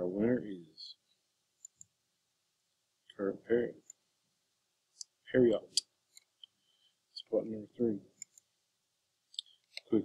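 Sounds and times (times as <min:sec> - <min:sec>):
person speaking: 0:05.0 - 0:06.0, 0:07.1 - 0:08.4, 0:09.4 - 0:10.0.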